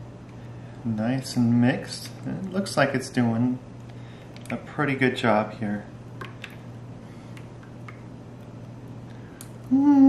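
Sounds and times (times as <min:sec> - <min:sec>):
steady low hum: 0:00.0 - 0:10.0
small clicks and drips: 0:06.2 - 0:06.7, 0:07.3 - 0:09.7.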